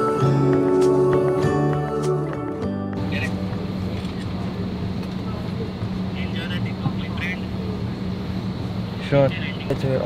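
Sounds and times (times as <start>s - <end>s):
airliner cabin drone: 0.0s - 10.0s.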